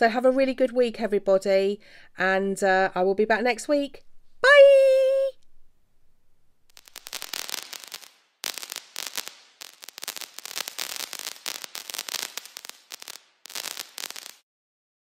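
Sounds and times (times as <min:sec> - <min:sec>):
fireworks crackling: 0:06.7 - 0:14.4.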